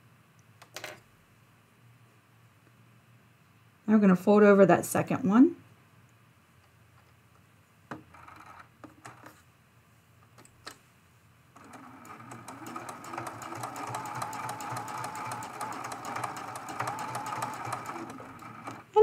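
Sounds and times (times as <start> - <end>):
sewing machine stitching: 11.6 - 19.0.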